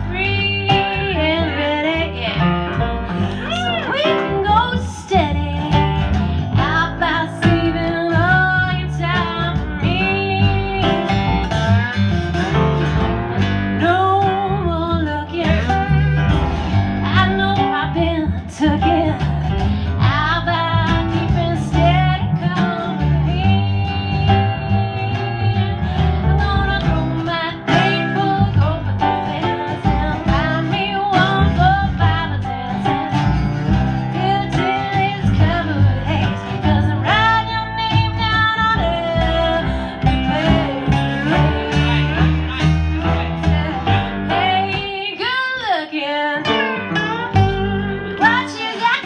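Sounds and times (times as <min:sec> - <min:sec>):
slide guitar: 0:00.0 - 0:49.0.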